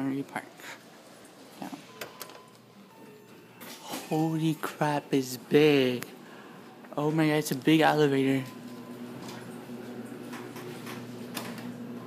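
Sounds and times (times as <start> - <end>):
elevator arrival beep: 1.8 - 3.6, 8.4 - 9.5.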